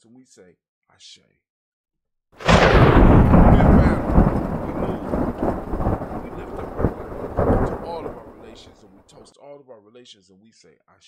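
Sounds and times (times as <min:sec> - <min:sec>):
thunder rumbling: 0:02.4 - 0:09.2.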